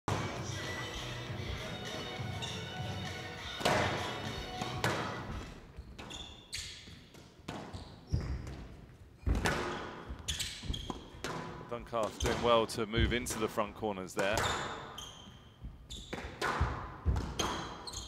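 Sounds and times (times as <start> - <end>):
squash ball cracks: 3.6 - 5.2, 16.1 - 17.8.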